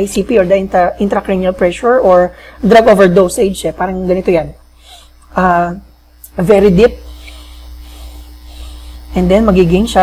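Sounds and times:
electrical mains hum: 0.0 - 10.0
slow deep breath: 4.8 - 5.2, 7.1 - 9.1.

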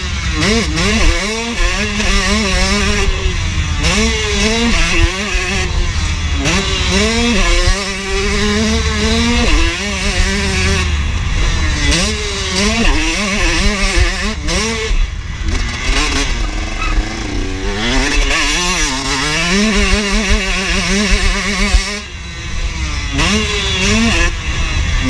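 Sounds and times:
motocross bike engine revving: 0.0 - 25.0.

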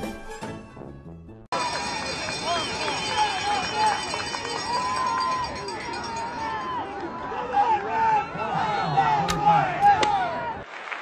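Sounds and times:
indistinct voices talking: 1.6 - 10.6.

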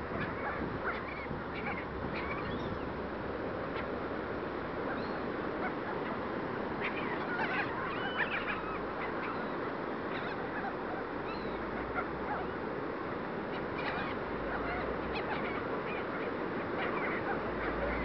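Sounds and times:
seagulls calling: 0.0 - 18.0
surf: 0.0 - 18.0
wind: 0.0 - 18.0.

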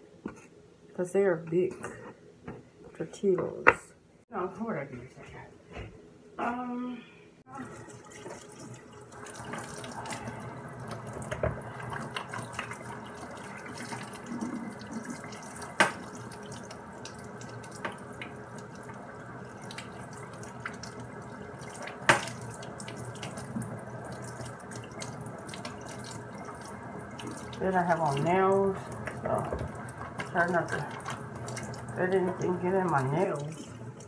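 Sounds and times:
tap running into sink: 10.9 - 12.9, 13.8 - 16.7, 29.0 - 30.3.

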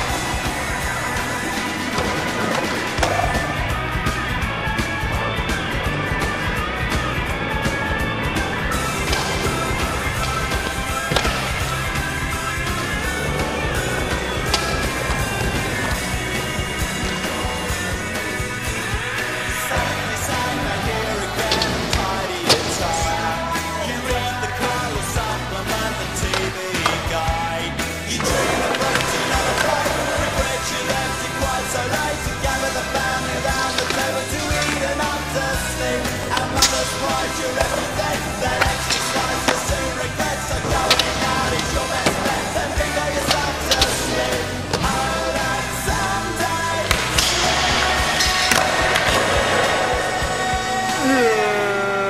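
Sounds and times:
skateboard clack: 0.0 - 3.6, 8.5 - 50.9
skateboard wheels rolling: 0.0 - 51.3
music with bass beat: 0.0 - 52.0.

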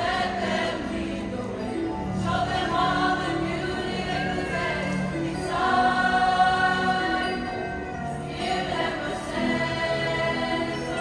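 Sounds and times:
choir singing in harmony: 0.0 - 11.0.

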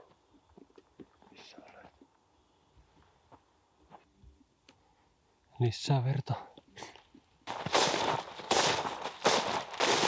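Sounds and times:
man whispering: 1.2 - 2.1.

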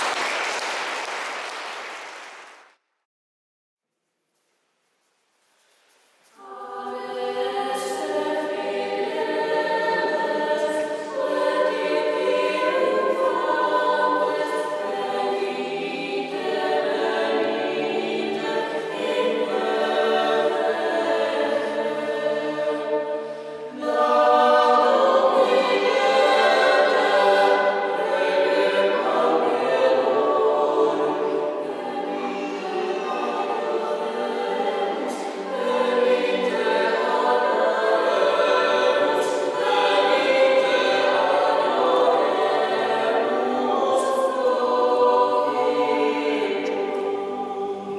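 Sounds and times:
choir singing: 6.3 - 47.9.

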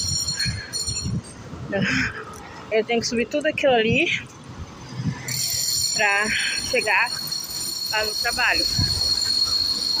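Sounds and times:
cars passing on street: 0.0 - 10.0.

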